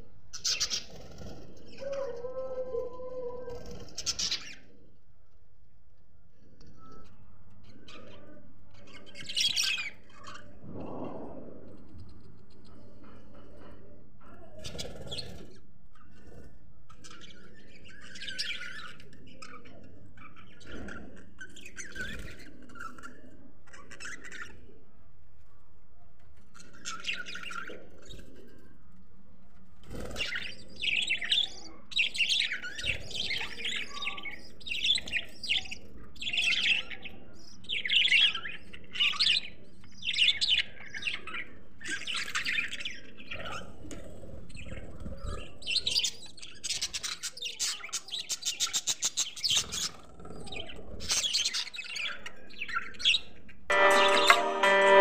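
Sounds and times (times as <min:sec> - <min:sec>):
budgerigars chirping: 0:00.4 - 0:01.1
plucked string music: 0:53.7 - 0:55.0.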